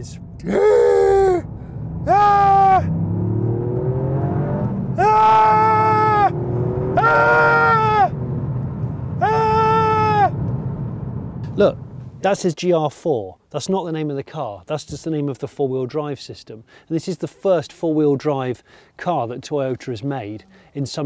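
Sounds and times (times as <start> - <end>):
turbocharged car engine revving: 1.3 - 9.2.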